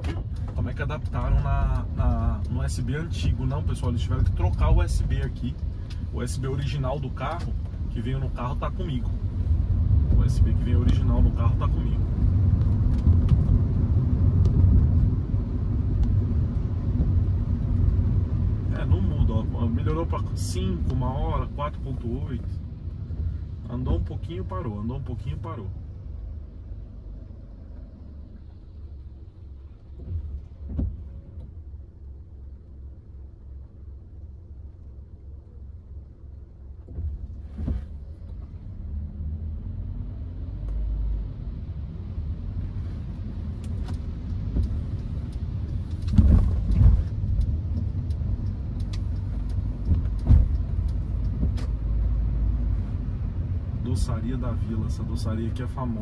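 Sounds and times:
car engine and tyres rumble: 0:00.0 - 0:56.0
thumps from the road: 0:30.0 - 0:31.5, 0:36.9 - 0:38.6, 0:46.0 - 0:47.1, 0:49.9 - 0:50.8, 0:51.4 - 0:51.8.

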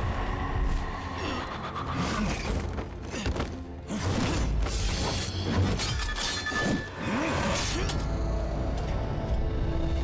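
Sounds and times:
dramatic background music: 0:00.0 - 0:10.0.

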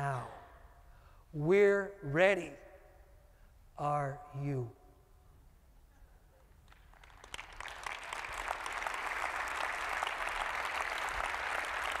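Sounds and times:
audience applauding: 0:06.7 - 0:12.0.

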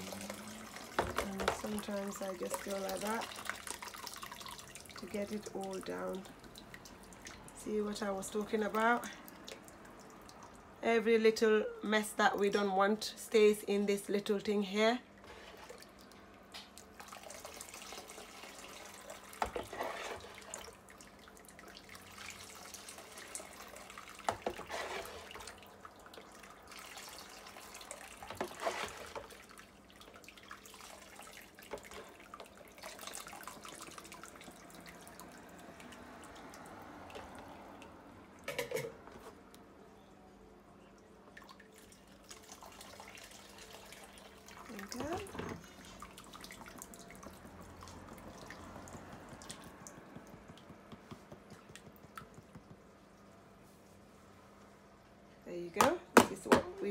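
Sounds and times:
juice trickling through a sieve: 0:00.0 - 0:11.0, 0:13.4 - 0:39.8, 0:40.7 - 0:55.5.

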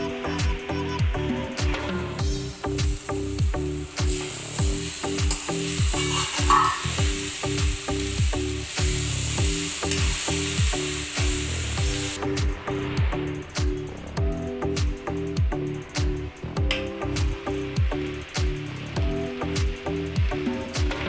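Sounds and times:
background music with bass beat: 0:00.0 - 0:21.0
curry sizzling in pan: 0:02.2 - 0:13.4, 0:17.1 - 0:21.0.

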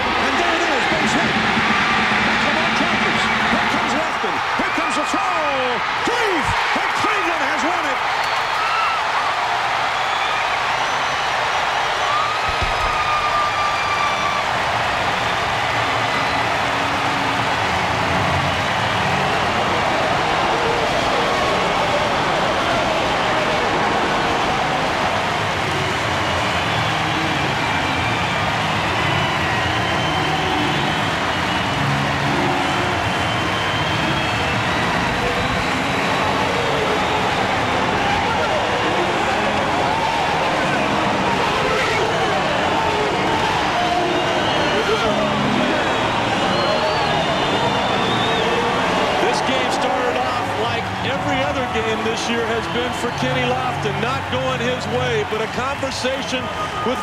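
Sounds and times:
stadium crowd cheering: 0:00.0 - 0:57.0.

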